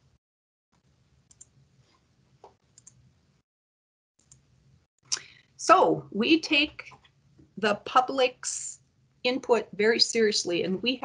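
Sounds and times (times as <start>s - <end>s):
faint computer mouse clicks: 1.3s - 1.5s, 2.4s - 3.0s.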